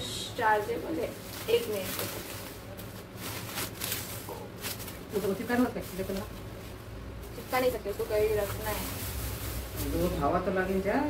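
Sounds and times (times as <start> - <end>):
bubble wrap crinkling: 0.4 - 11.0.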